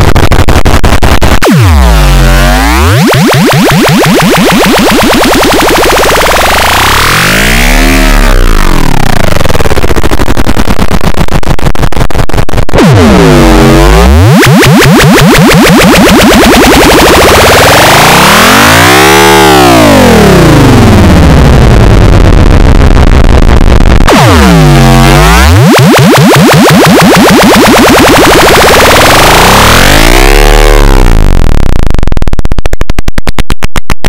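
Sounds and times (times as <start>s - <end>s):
distorted phone startup jingle: 24.1s - 31.4s.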